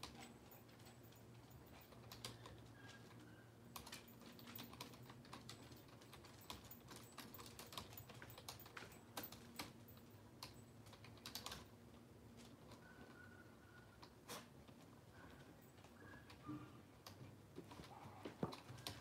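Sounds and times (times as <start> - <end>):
typing on computer keyboard: 0.0 - 11.8, 17.8 - 19.0.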